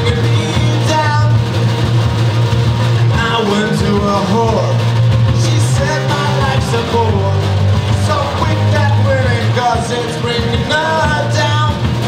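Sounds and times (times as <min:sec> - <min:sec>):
person singing: 0:00.0 - 0:01.4, 0:03.1 - 0:12.0
live rock band: 0:00.0 - 0:12.0.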